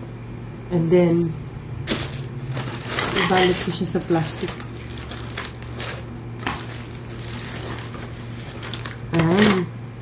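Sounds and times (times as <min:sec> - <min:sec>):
steady low hum: 0:00.0 - 0:10.0
plastic bag rustling: 0:01.8 - 0:09.7.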